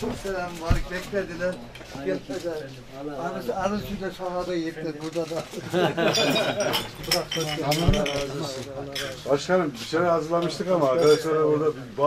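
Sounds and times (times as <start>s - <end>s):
men talking and laughing: 1.9s - 9.4s.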